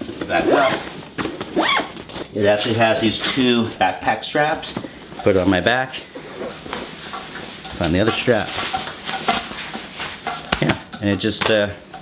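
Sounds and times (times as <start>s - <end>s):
fabric and strap handling: 0.0s - 3.5s.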